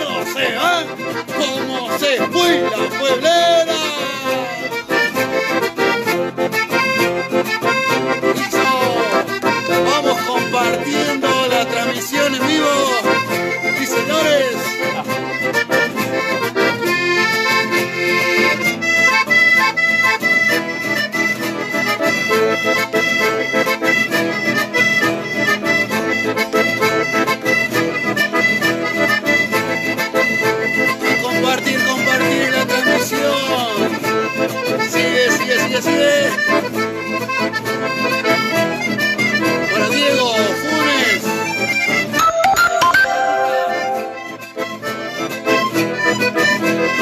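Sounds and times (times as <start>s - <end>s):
accordion melody: 0.0s - 47.0s
acoustic guitar accompaniment: 0.0s - 47.0s.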